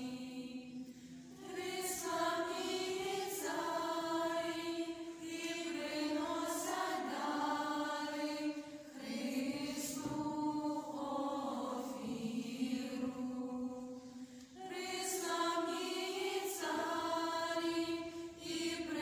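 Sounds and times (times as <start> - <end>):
choir singing a carol unaccompanied: 0.0 - 19.0.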